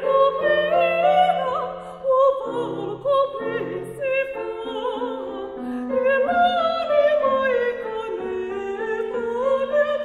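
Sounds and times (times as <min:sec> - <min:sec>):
woman singing operatically: 0:00.0 - 0:10.0.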